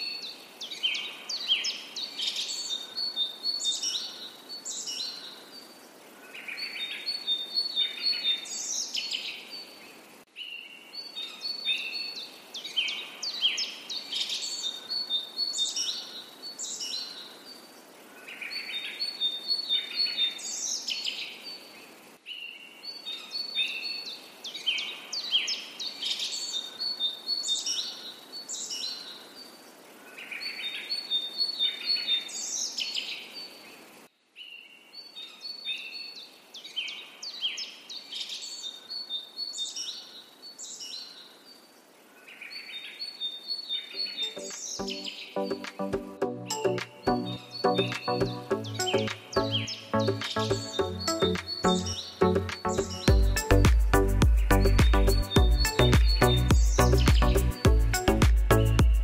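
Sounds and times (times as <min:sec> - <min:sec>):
birds chirping and trilling: 0:34.4 - 0:59.0.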